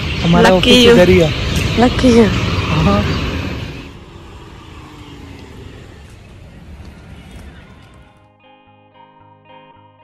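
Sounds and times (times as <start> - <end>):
distant road traffic rumble: 0.0 - 8.3
faint engine hum: 0.0 - 8.3.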